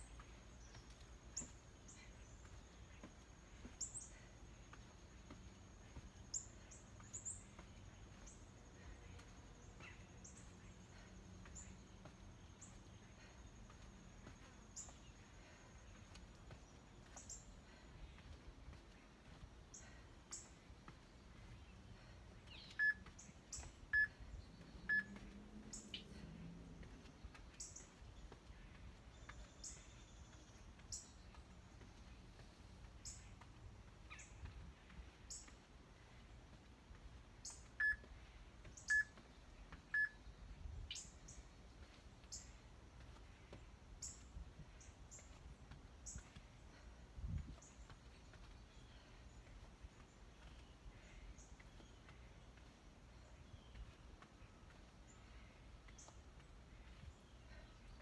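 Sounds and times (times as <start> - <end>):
interval timer beeping: 22.8 - 24.1, 24.8 - 25.2, 37.8 - 38.0, 38.9 - 39.1.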